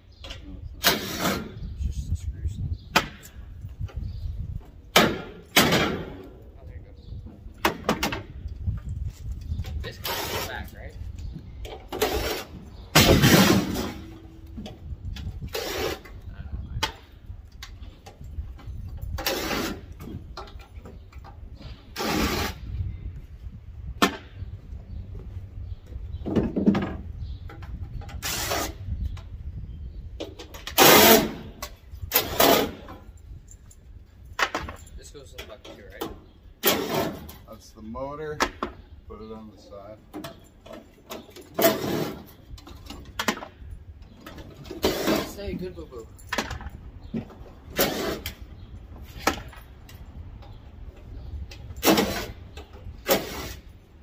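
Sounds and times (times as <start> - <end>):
metal scrapes: 9.9 - 10.8, 11.9 - 14.2, 44.6 - 45.8.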